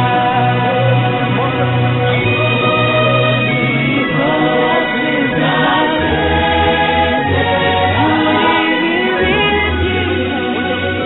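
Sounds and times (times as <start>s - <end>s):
choir singing gospel: 0.0s - 11.0s
held bass notes: 0.0s - 11.0s.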